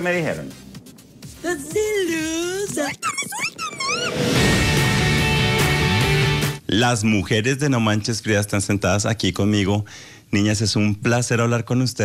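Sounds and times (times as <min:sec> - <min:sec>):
trailer music with held chords: 0:00.0 - 0:06.6
woman shouting high-pitched: 0:01.4 - 0:04.1.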